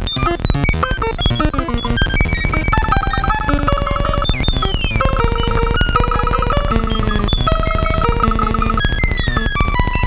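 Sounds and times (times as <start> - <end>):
synthesizer clicks and bleeps: 0.0 - 10.0
rapidly repeating high note: 0.2 - 9.0.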